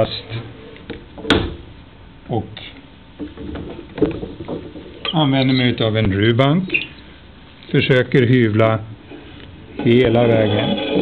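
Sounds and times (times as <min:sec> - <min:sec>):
wooden knocks and clunks: 0:03.2 - 0:05.0.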